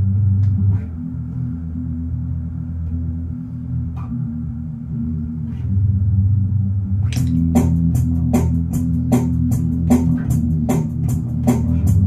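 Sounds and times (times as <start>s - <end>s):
electric bass guitar notes: 0.0s - 12.0s.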